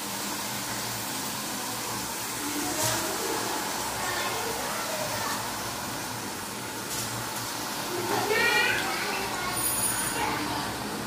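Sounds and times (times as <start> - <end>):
vegetables sizzling in pan: 0.0 - 11.0.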